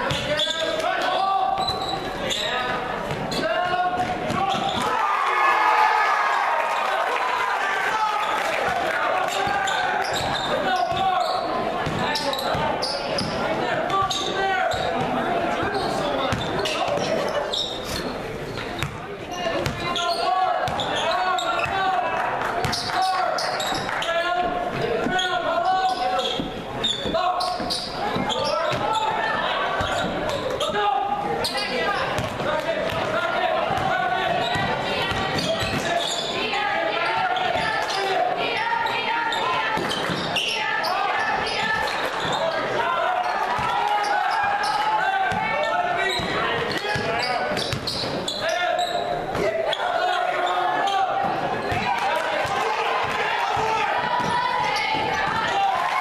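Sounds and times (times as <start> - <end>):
indistinct crowd chatter: 0.0 - 56.0.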